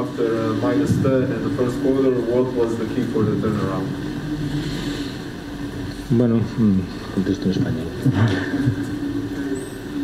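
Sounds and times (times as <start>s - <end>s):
man speaking: 0.0s - 4.1s.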